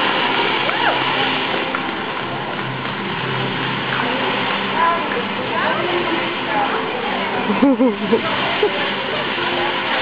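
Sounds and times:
firework fountain hissing: 0.0 - 10.0.

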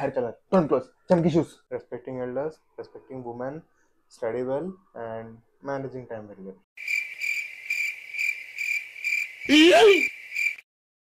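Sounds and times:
crickets chirping: 6.8 - 10.6.

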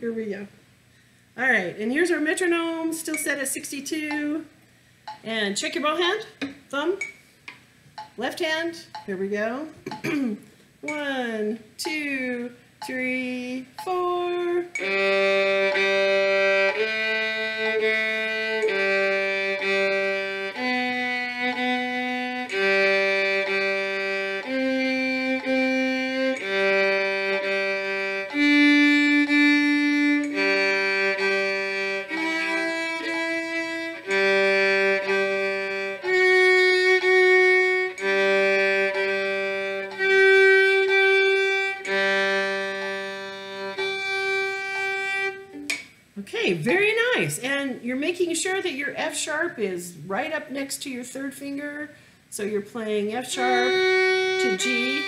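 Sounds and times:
solo violin bowed notes: 14.6 - 45.7, 53.4 - 55.0.

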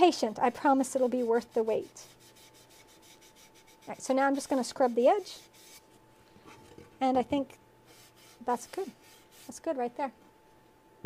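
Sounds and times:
damp sponge rubbing clay: 0.6 - 6.0, 7.9 - 9.8.

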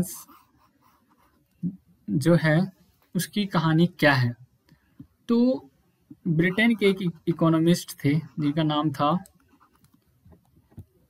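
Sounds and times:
stylus scratching on tablet: 0.0 - 1.6, 6.3 - 10.4.

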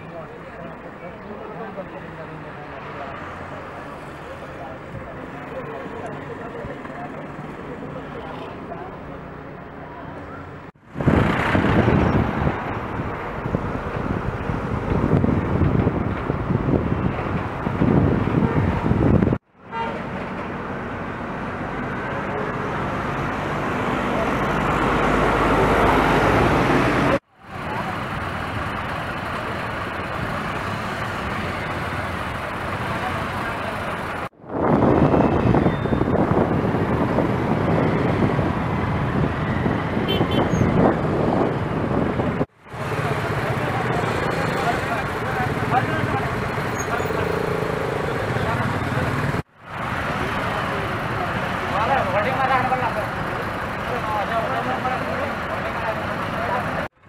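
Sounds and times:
voices: 0.0 - 10.7, 42.8 - 49.4, 50.1 - 57.0
motorcycle engines: 0.0 - 57.0
truck engines: 0.0 - 57.0.

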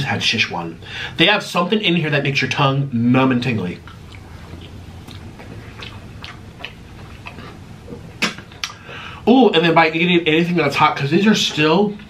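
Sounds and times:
close-miked chewing: 3.5 - 9.0, 11.0 - 12.0
wet mouth clicks: 3.8 - 8.9
sharp mouth smacks: 3.9 - 8.8.

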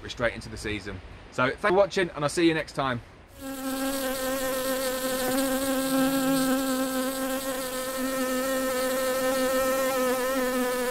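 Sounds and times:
honeybee buzzing: 3.4 - 10.9.

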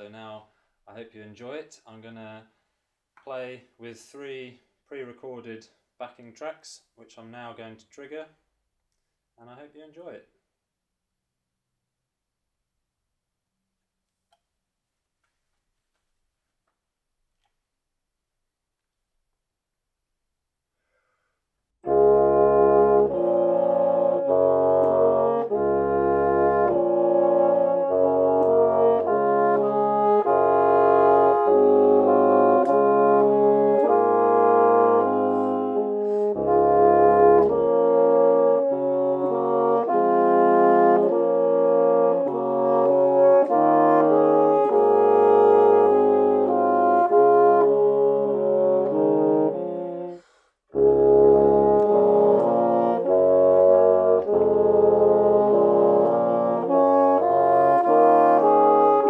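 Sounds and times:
bassoons playing in harmony: 21.8 - 59.0.

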